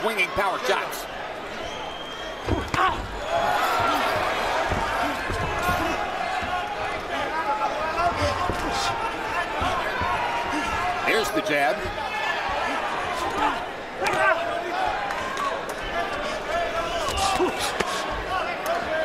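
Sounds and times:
crowd cheering and shouting: 0.0s - 19.0s
dull thumps: 2.4s - 6.8s, 8.0s - 11.1s.

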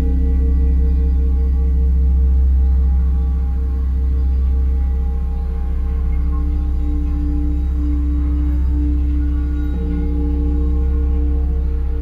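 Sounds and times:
deep hum: 0.0s - 12.0s
singing bowls ringing: 6.4s - 12.0s.

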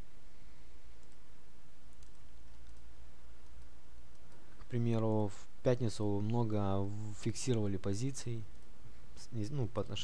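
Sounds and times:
low hum and hiss: 0.0s - 10.0s
computer mouse clicks: 1.0s - 1.2s, 1.9s - 4.7s.

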